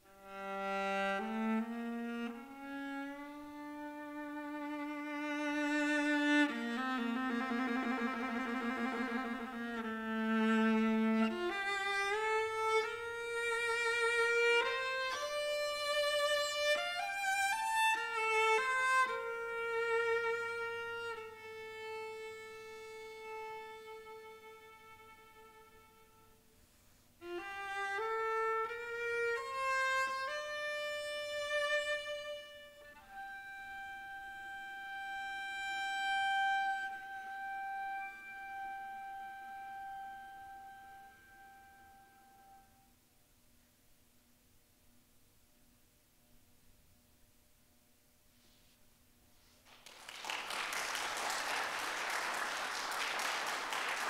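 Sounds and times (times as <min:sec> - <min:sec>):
solo viola melody: 0:00.0 - 0:26.6, 0:27.2 - 0:42.9.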